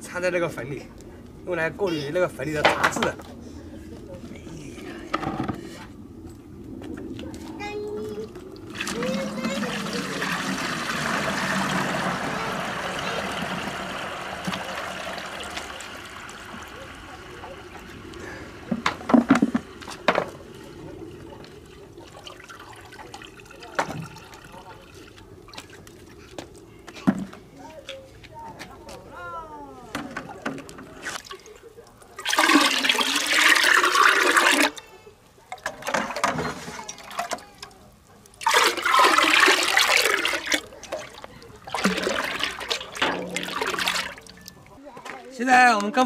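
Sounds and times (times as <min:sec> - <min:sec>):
water pouring into bucket: 0:08.6 - 0:25.9, 0:31.0 - 0:34.9, 0:35.6 - 0:44.8
plastic buckets knocking: 0:18.7 - 0:20.4, 0:38.4 - 0:44.5.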